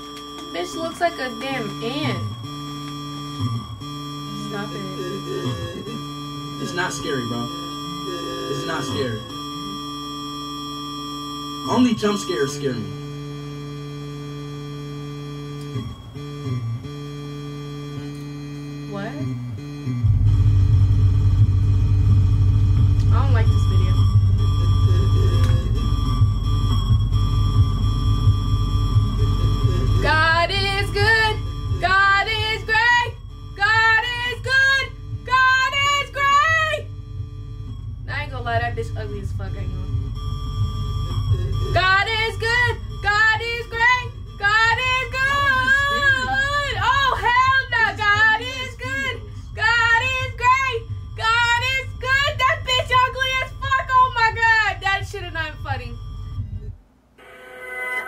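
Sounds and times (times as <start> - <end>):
high held tones: 0.0 - 58.0
deep rumble: 19.2 - 56.8.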